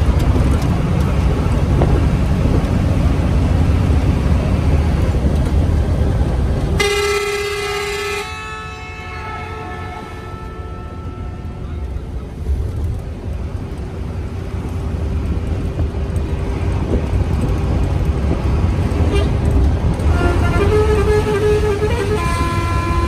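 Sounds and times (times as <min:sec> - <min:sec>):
bus engine and road rumble: 0:00.0 - 0:23.0
multi-tone horn: 0:06.8 - 0:12.0, 0:20.0 - 0:23.0.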